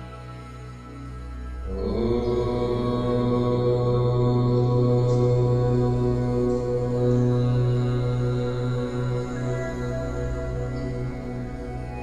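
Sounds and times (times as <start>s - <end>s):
deep chanted tone: 0.0s - 12.0s
sustained drone: 0.0s - 12.0s.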